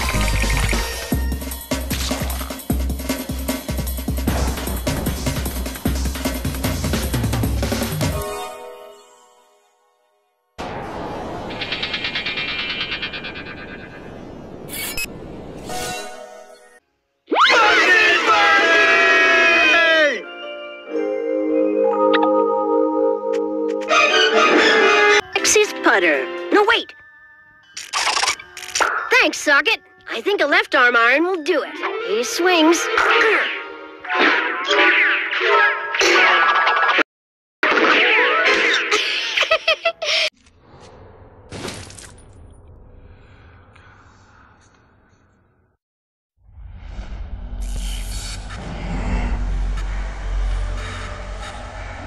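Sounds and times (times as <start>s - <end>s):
busy cartoon music: 0.0s - 8.9s, 19.8s - 37.0s
whoosh and hit: 10.6s - 15.0s
comic gliding and impact effects: 10.6s - 16.5s, 46.4s - 52.0s
cartoon voices screaming: 17.3s - 20.2s
low hum: 46.4s - 52.0s.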